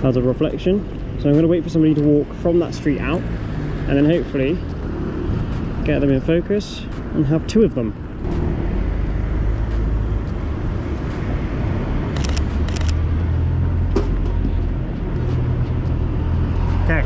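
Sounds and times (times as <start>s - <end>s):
low rumble of road traffic: 0.0s - 17.0s.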